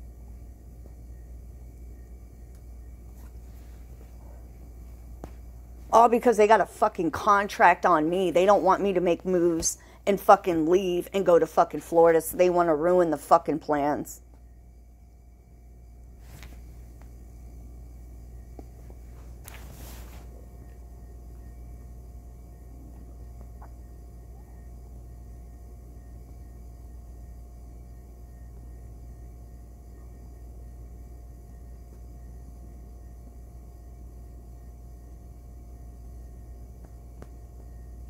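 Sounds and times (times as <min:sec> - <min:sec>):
low background hum: 0:00.0 - 0:38.0.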